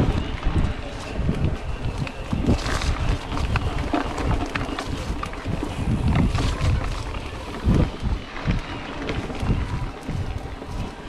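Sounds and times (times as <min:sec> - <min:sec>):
bike clicks and rattles: 0:00.0 - 0:11.0
wind buffeting microphone: 0:00.0 - 0:11.0.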